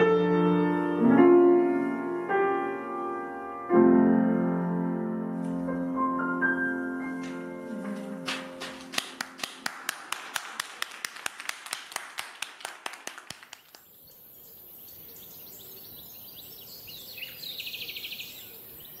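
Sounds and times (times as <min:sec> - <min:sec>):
hand clapping applause: 0:08.2 - 0:14.0
faint bird-like chirps: 0:14.0 - 0:19.0.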